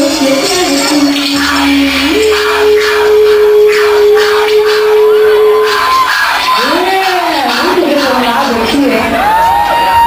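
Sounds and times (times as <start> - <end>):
band holding sustained note: 0.0 - 6.7
noisy bursts: 0.0 - 10.0.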